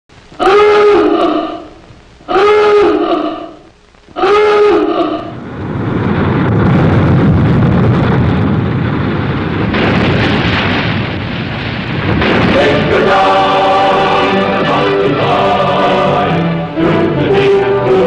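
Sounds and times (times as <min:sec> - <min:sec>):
steady rushing noise: 0:00.1 - 0:18.0.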